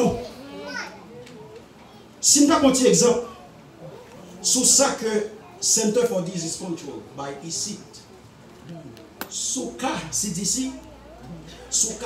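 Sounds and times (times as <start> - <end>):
faint voices in room: 0.0 - 12.0
child's voice: 0.2 - 1.1, 10.8 - 11.7
man preaching over loudspeaker: 2.2 - 3.3.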